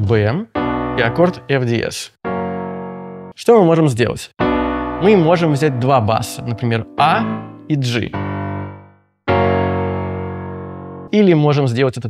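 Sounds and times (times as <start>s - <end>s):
piano chords: 0.5s - 11.5s.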